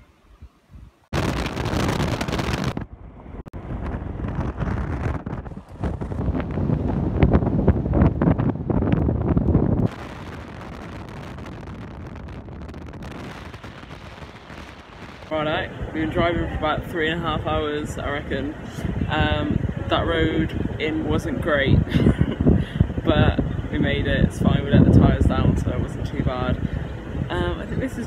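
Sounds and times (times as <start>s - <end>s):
wind buffeting microphone: 0.3s - 28.0s
vehicle road noise: 2.8s - 12.3s, 13.0s - 28.0s.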